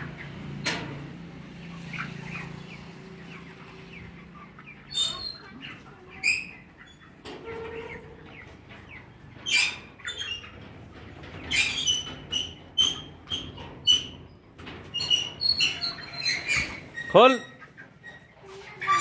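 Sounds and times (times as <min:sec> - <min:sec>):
chicks peeping: 0:00.0 - 0:19.0.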